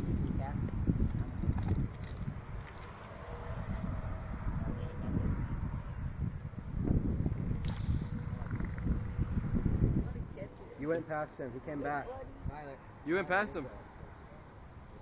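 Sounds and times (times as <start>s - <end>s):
wind buffeting microphone: 0.0s - 11.1s.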